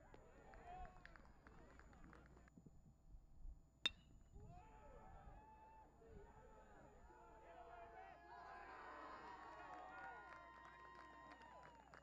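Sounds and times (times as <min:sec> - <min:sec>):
sharp clink: 0:03.9 - 0:04.1.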